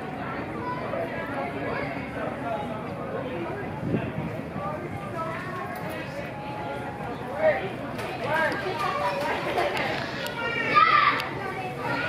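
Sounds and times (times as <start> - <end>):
children playing: 0.0 - 3.8, 4.5 - 12.0
people talking: 0.0 - 12.0.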